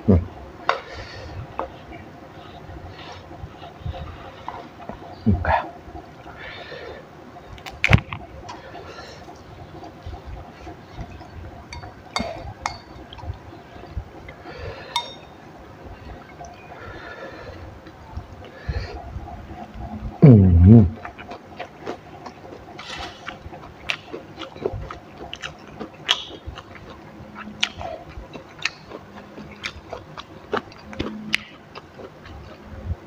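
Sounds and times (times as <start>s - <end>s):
person chewing: 19.7s - 33.0s.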